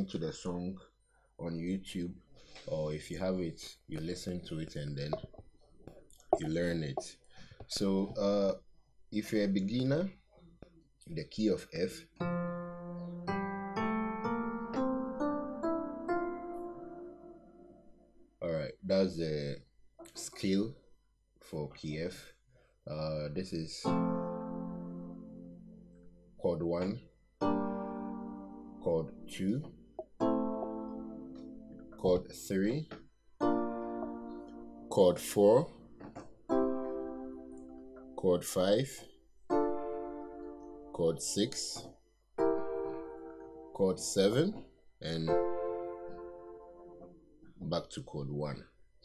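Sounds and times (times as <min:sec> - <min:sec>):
keyboard playing scale notes: 0:12.2 - 0:18.0, 0:23.8 - 0:26.8, 0:27.4 - 0:38.5, 0:39.5 - 0:41.6, 0:42.4 - 0:44.6, 0:45.2 - 0:47.2
piano chord ringing: 0:27.4 - 0:32.4, 0:36.5 - 0:38.2, 0:39.5 - 0:41.0, 0:42.4 - 0:44.2.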